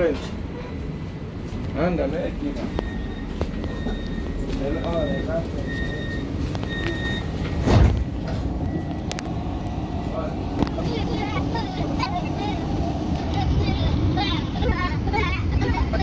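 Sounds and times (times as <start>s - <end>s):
street traffic noise: 0.0s - 16.0s
tram door warning beeps: 2.3s - 10.7s
loud low thump: 7.4s - 8.5s.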